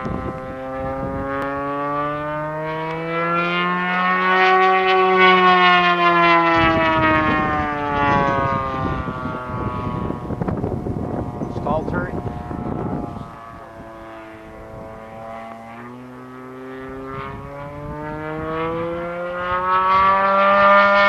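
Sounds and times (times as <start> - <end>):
model airplane engine running: 0.0 - 21.0.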